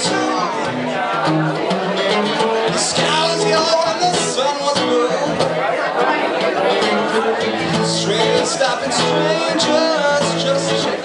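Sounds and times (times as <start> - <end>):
guitar strummed: 0.0 - 11.0
man singing: 0.0 - 11.0.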